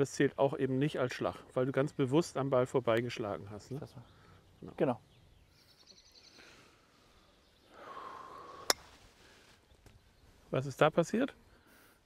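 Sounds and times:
golf club tapping ball: 0:08.7 - 0:08.9.

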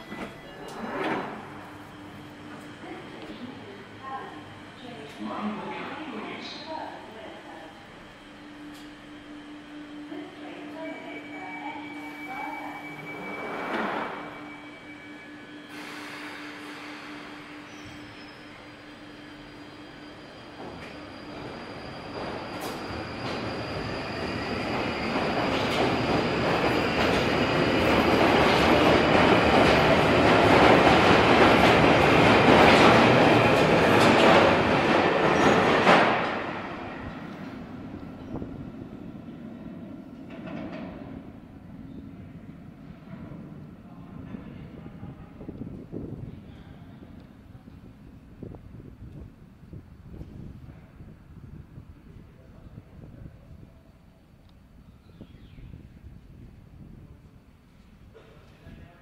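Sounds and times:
underground train departing: 0:00.0 - 0:59.0.

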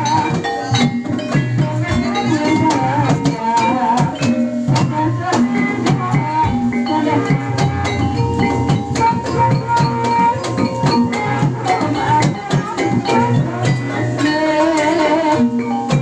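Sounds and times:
wavering melody line: 0:06.8 - 0:11.6
drum beat: 0:07.3 - 0:12.8.

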